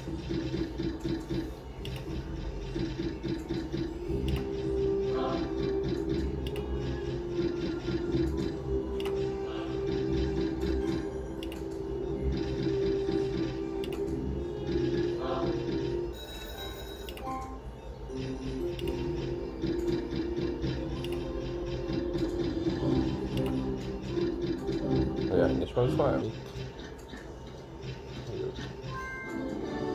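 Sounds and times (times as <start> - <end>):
slot machine music and reels: 0.0 - 29.9.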